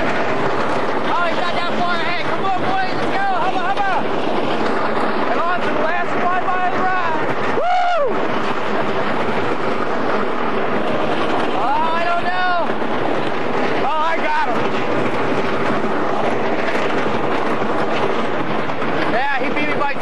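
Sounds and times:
roller coaster train rumble: 0:00.0 - 0:20.0
rush of wind on microphone: 0:00.0 - 0:20.0
riders shouting: 0:01.1 - 0:04.1, 0:05.3 - 0:08.8, 0:11.6 - 0:12.8.

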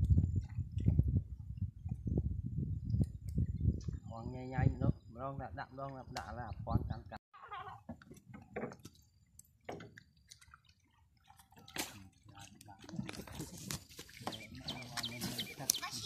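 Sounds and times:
water sloshing and splashing: 0:07.9 - 0:16.0.

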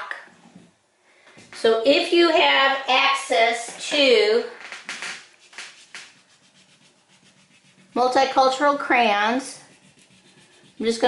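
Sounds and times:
crayon rubbing on paper: 0:05.2 - 0:11.0.

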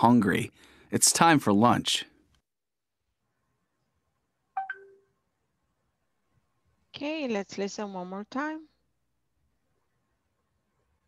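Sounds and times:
electronic chime: 0:04.6 - 0:05.1.

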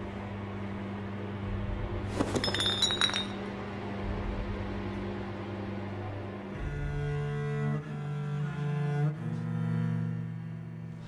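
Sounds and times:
low film score drone: 0:00.0 - 0:02.1, 0:03.4 - 0:11.0
metal vessels clattering: 0:02.1 - 0:03.4.

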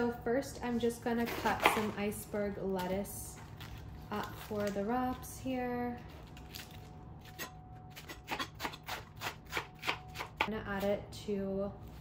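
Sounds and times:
knife cutting lettuce: 0:06.3 - 0:11.0.

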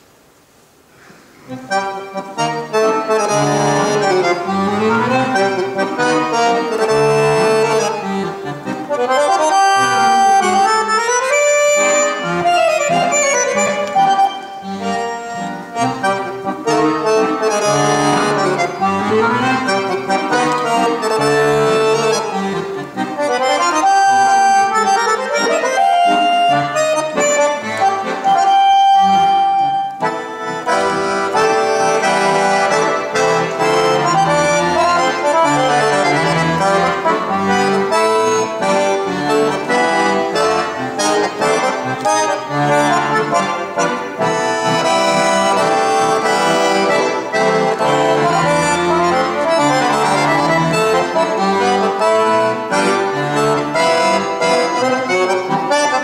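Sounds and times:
piano accordion melody: 0:01.4 - 0:56.0.

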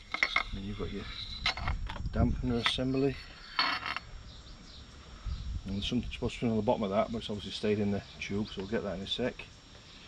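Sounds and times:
metal rod scraping out of tube: 0:00.0 - 0:01.9, 0:02.5 - 0:04.1.

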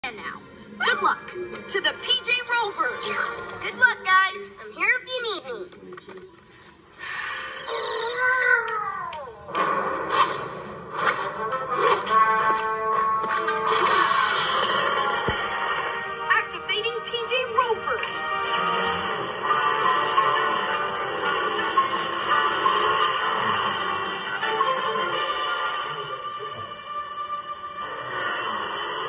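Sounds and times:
cartoon music and sound effects: 0:08.0 - 0:29.0.

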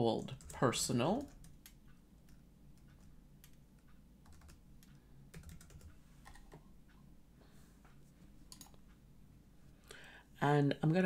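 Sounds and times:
computer mouse clicks: 0:00.2 - 0:06.7, 0:08.5 - 0:09.0
keyboard keystrokes: 0:00.3 - 0:06.6.

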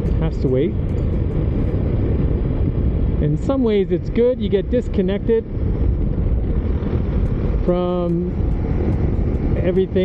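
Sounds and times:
wind and motorcycle engine rush: 0:00.0 - 0:10.0.

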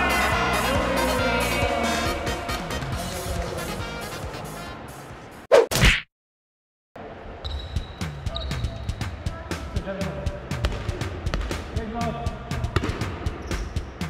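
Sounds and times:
background music: 0:00.0 - 0:05.4, 0:07.5 - 0:14.0
volleyball slaps and bounces: 0:10.6 - 0:11.7, 0:12.7 - 0:13.7.

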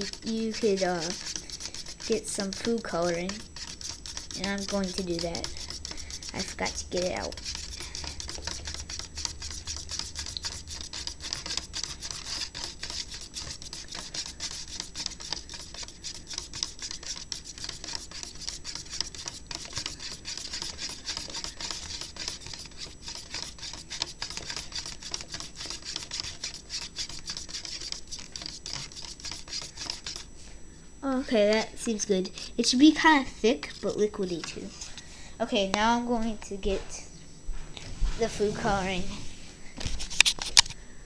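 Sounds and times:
spoon scraping in plastic cup: 0:00.0 - 0:30.3, 0:33.6 - 0:35.0.

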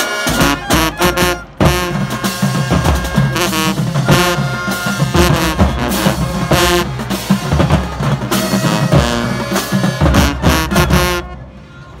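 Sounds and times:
marching band chord hits: 0:00.0 - 0:11.4.

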